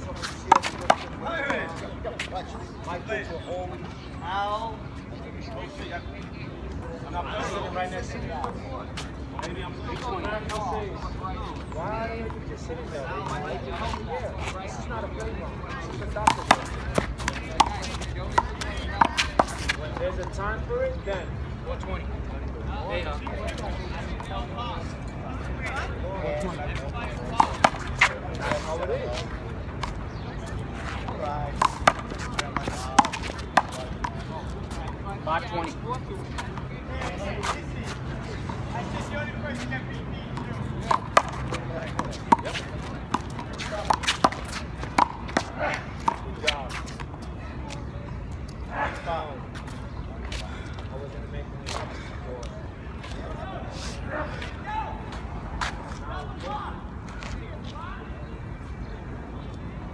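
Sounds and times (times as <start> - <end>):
voices chattering: 0.0 - 59.9
handball striking hard surface: 31.6 - 34.2, 40.4 - 46.3.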